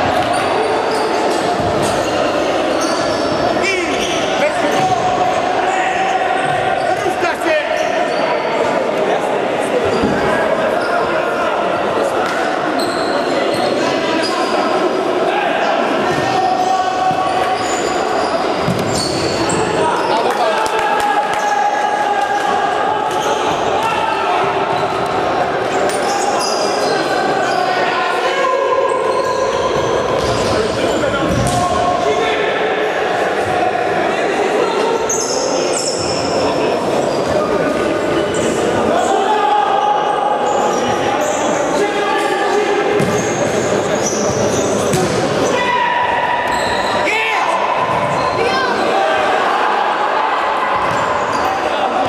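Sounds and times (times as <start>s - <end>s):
shoes squeaking on court: 0.2s - 5.0s, 12.8s - 14.5s, 17.3s - 20.2s, 43.0s - 45.2s.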